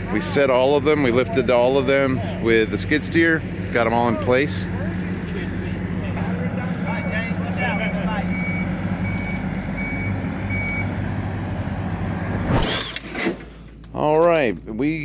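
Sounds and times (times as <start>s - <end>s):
diesel engine running: 0.0s - 15.0s
backup alarm beeping: 6.9s - 10.9s.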